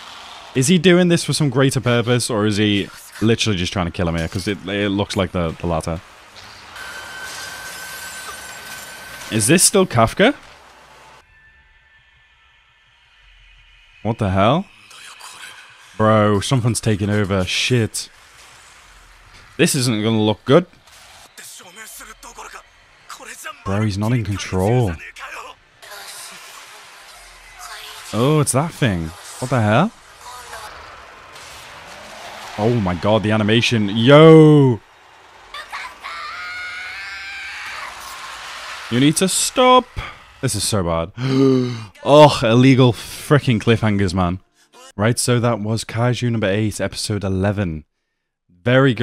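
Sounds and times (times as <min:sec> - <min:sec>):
low hum: 0:00.0 - 0:41.7
high-pitched scream: 0:19.6 - 0:40.6.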